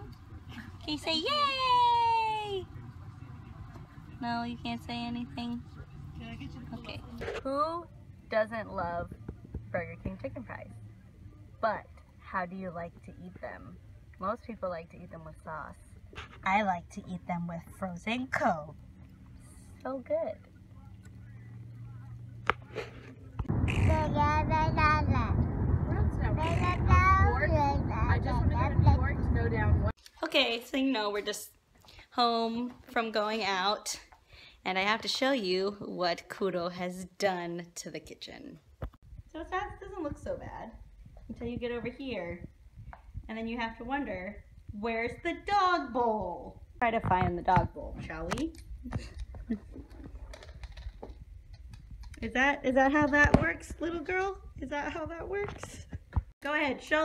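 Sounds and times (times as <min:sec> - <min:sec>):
dry kibble clicking and tapping: 0:49.0 - 0:52.2.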